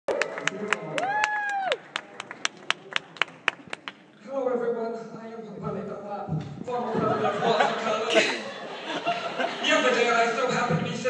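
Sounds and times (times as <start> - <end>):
audience clapping: 0.1 - 4.1.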